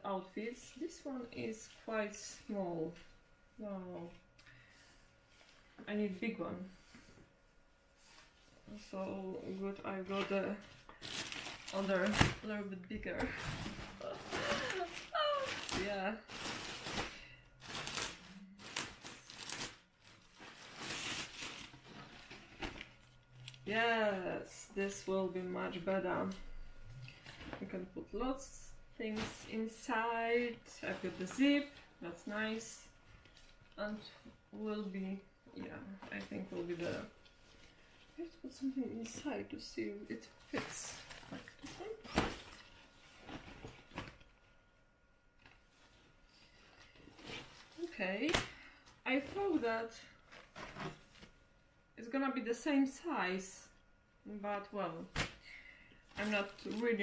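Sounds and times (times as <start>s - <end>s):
plastic packaging crinkling: 10.9s - 12.5s, 13.5s - 23.6s, 56.1s - 57.0s.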